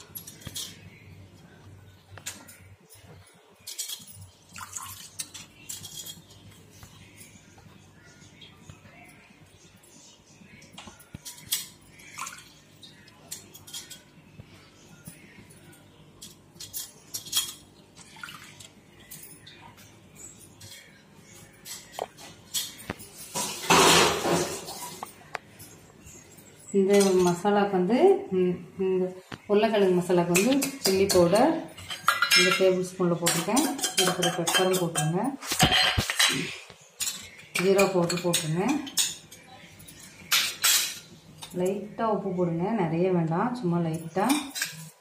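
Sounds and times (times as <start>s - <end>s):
ladle clinking against metal pot: 30.3s - 36.4s.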